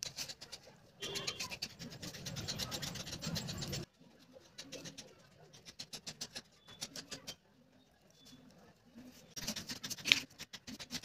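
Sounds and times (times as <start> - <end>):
craft knife cutting card: 9.4 - 11.0.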